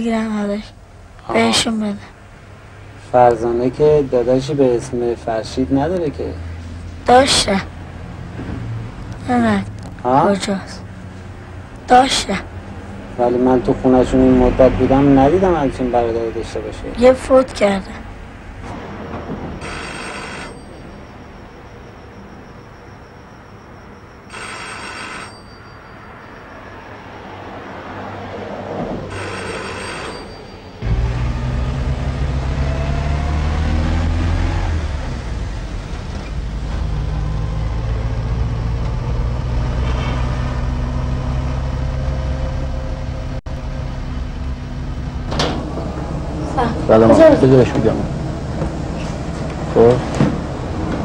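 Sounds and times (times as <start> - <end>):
car engine and road noise: 0.0 - 51.0
telephone ringing: 19.1 - 27.3, 29.1 - 30.8.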